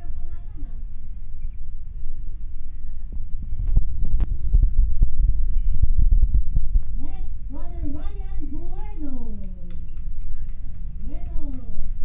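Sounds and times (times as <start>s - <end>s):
microphone handling thumps and clicks: 3.1s - 7.1s.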